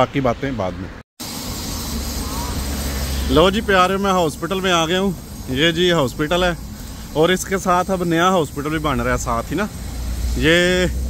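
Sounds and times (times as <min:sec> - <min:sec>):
low rumble with hiss: 0:01.3 - 0:11.0.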